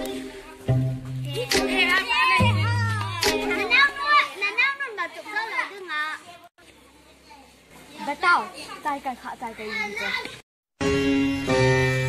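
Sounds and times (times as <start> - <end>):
children talking and calling out: 0.0 - 10.5.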